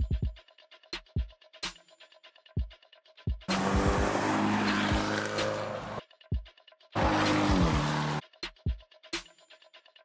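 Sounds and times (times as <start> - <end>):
car engine and exhaust: 3.5 - 6.0, 7.0 - 8.2.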